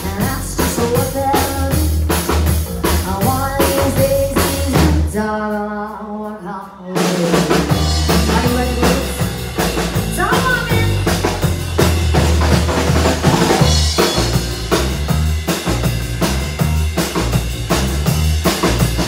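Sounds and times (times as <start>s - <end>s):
woman singing: 0.0s - 2.0s, 2.9s - 11.1s
live bar band playing: 0.0s - 19.0s
kick and snare drum beat: 7.5s - 19.0s.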